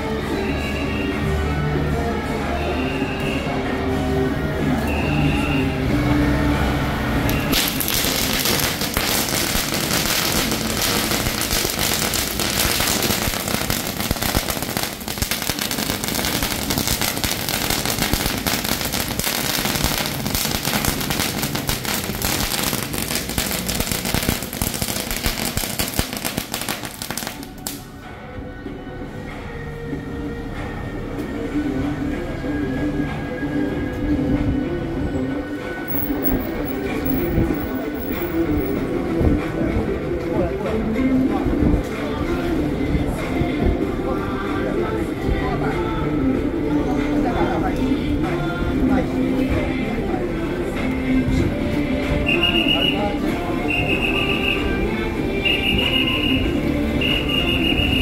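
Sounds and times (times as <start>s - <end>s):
crowd: 0.0s - 58.0s
music: 0.0s - 58.0s
firecrackers crackling: 7.2s - 28.0s, 35.9s - 38.9s, 52.1s - 54.8s, 55.4s - 58.0s.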